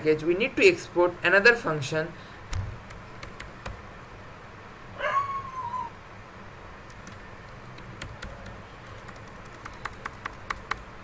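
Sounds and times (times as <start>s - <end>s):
computer keyboard clicks: 2.5s - 3.8s, 6.8s - 10.9s.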